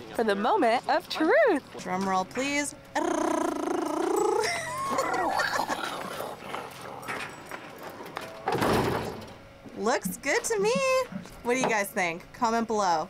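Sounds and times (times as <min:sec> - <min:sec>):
people talking: 0:00.0 - 0:06.1, 0:09.8 - 0:13.0.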